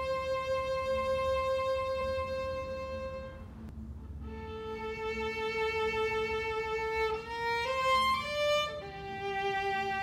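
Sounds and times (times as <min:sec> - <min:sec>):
solo violin playing: 0:00.0 - 0:10.0.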